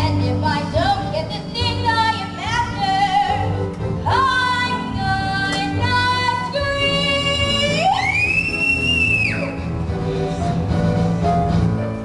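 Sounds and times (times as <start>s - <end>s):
musical accompaniment: 0.0s - 12.0s.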